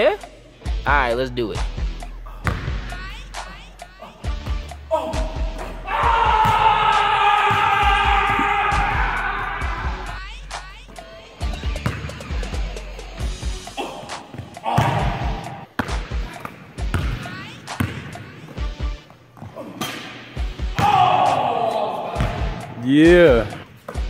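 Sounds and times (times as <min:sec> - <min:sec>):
background music: 0:00.0 - 0:24.0
basketball bouncing on hardwood: 0:11.7 - 0:12.1, 0:16.9 - 0:17.2, 0:17.8 - 0:18.0.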